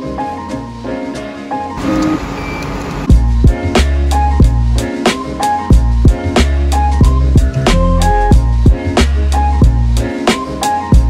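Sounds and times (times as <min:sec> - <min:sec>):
background music: 0:00.0 - 0:11.0
card reader beep: 0:01.8 - 0:03.1.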